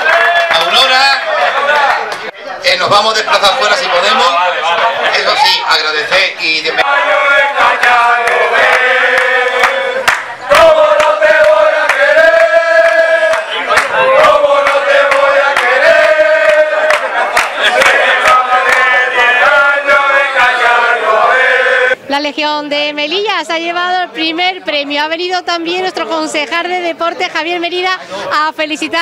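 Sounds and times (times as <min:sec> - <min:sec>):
men singing a chant: 0:06.7 - 0:22.0.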